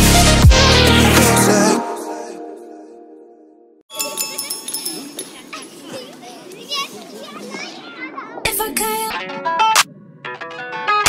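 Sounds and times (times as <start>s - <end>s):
children chattering and calling: 3.9s - 9.6s.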